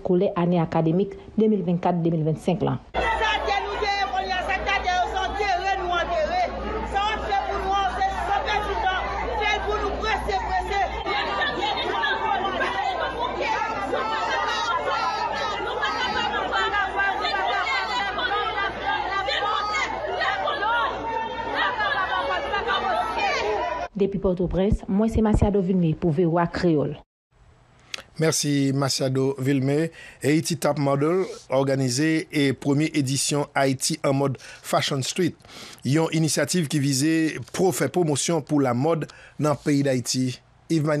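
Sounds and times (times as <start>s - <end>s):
crowd talking and shouting: 2.9s - 24.0s.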